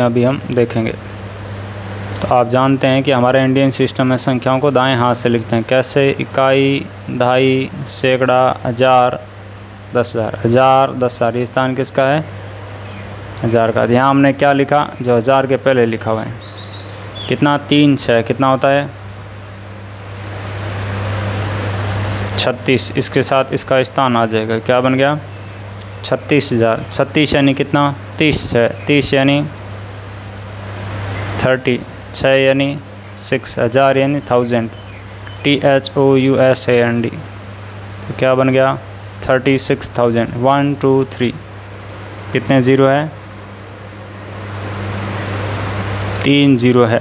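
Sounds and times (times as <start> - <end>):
low steady hum: 0.0 - 47.0
steady hiss: 0.0 - 47.0.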